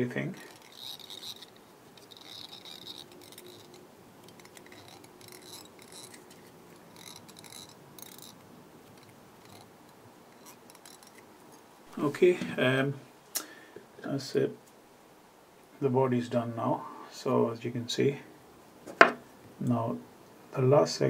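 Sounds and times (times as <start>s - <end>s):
fingers rustling and clicking: 0.0s - 11.7s.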